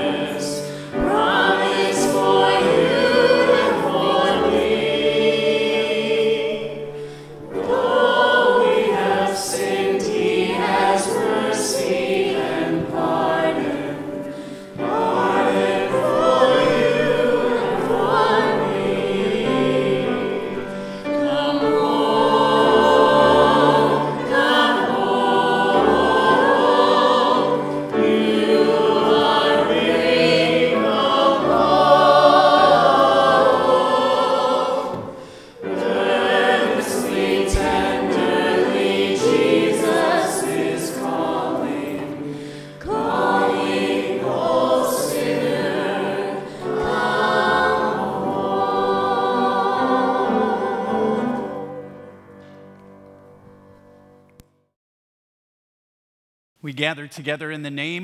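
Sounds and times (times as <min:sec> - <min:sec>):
vocal group singing: 0:00.0 - 0:52.2
grand piano accompaniment: 0:00.0 - 0:54.4.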